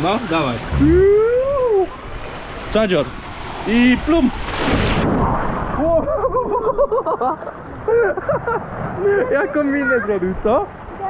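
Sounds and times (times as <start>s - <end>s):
splash into water: 4.4s - 5.9s.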